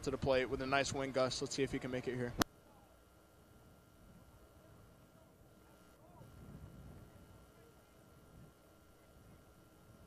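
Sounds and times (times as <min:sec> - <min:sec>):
faint distant voices: 0:04.0 - 0:10.0.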